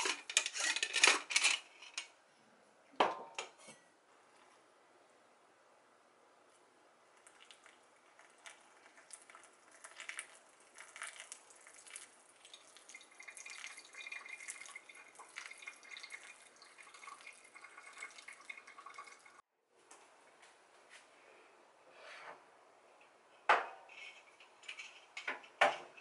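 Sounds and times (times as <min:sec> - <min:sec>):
water trickling and dripping: 0:07.2 - 0:19.4.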